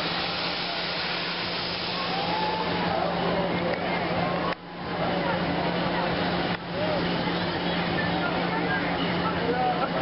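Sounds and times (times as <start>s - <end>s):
mechanical rushing hiss: 0.0s - 3.0s.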